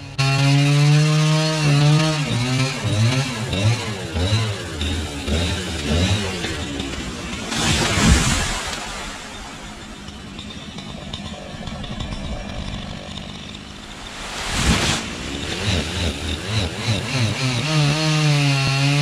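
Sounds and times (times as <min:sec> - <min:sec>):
chainsaw cutting wood: 0:00.0 - 0:19.0
palm fronds crashing to ground: 0:07.4 - 0:10.1, 0:13.9 - 0:16.9.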